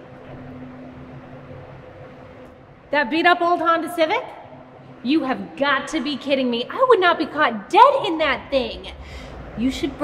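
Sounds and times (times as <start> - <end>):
room tone hum and hiss: 0.0 - 10.0.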